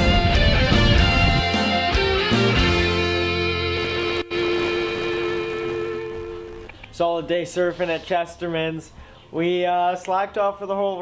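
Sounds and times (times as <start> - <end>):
rock music with guitar: 0.0 - 6.8.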